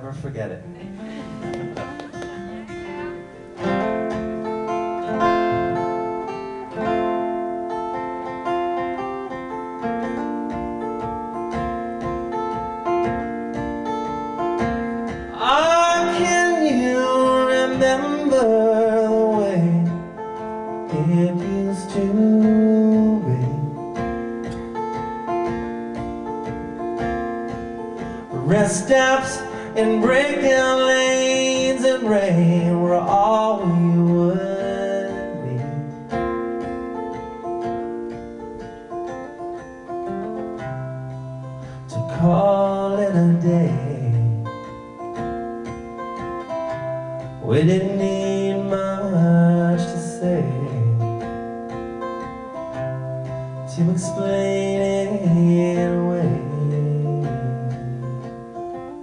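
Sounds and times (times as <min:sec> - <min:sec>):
acoustic guitar playing: 0:00.0 - 0:59.0
man singing: 0:15.3 - 0:24.0, 0:28.2 - 0:36.4, 0:41.9 - 0:44.9, 0:47.4 - 0:51.4, 0:53.6 - 0:58.4.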